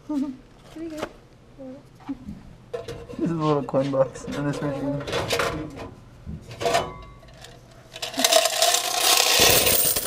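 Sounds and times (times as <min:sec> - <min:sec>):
coins jingling poured out: 0:08.0 - 0:10.0.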